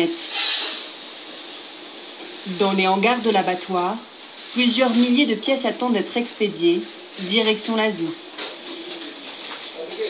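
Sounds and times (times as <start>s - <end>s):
bird cooing: 8.1s - 10.0s.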